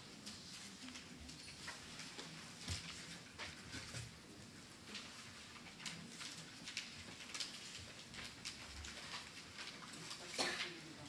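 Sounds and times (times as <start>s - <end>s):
paper rustling: 0.0s - 11.0s.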